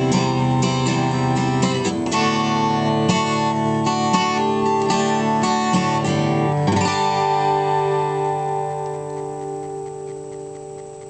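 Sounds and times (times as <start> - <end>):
acoustic guitar chord ringing: 0.0 - 10.9
faint regular ticking: 0.0 - 11.0.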